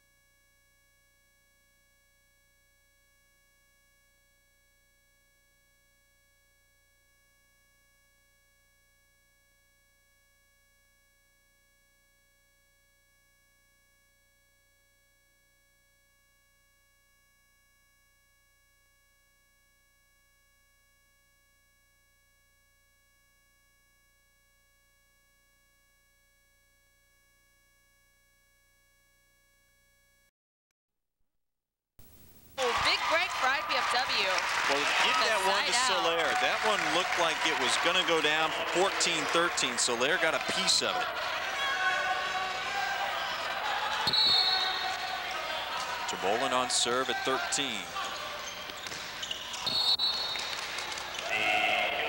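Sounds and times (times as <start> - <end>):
faint steady hum: 32.0 - 49.3
thin steady high tones: 33.1 - 48.8.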